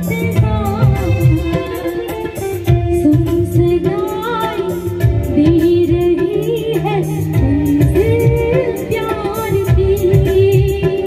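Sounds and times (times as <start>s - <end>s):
live band with drum beat: 0.0s - 11.0s
woman singing into microphone: 0.0s - 11.0s.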